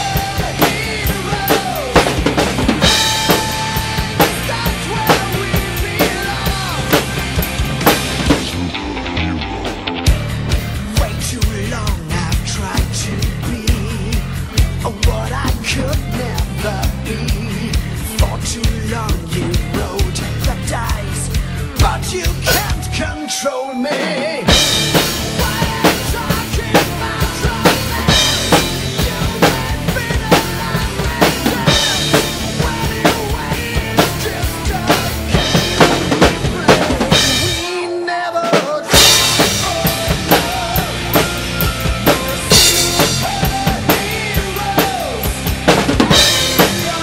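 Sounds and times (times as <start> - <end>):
drum kit played hard: 0.0 - 23.1, 23.7 - 47.0
recorded metal song: 0.0 - 47.0.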